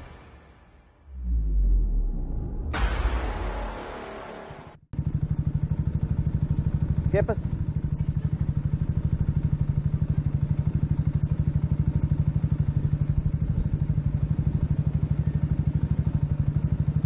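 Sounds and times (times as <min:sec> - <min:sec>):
motorcycle engine idling: 0:05.0 - 0:17.0.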